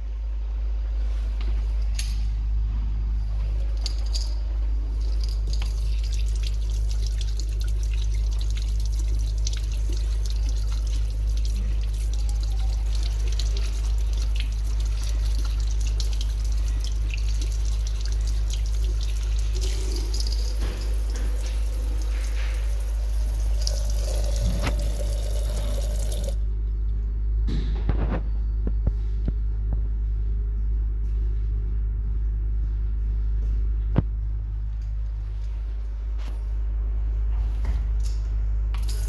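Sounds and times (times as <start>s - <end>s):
steady low hum: 0.0s - 39.0s
tap water splashing into basin: 12.8s - 26.4s.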